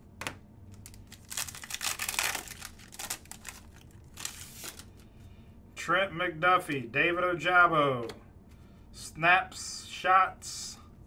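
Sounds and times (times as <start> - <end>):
wrapper crinkling and tearing: 0.7 - 5.0.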